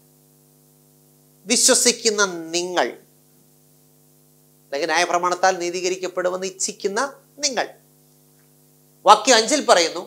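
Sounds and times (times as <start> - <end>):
electrical hum: 0.0 - 10.0
man speaking: 1.5 - 3.0, 4.7 - 7.8, 9.0 - 10.0.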